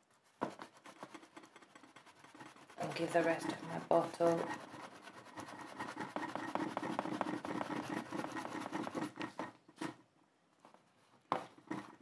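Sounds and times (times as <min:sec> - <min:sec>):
tissue rubbing on paper: 0:00.0 - 0:09.5.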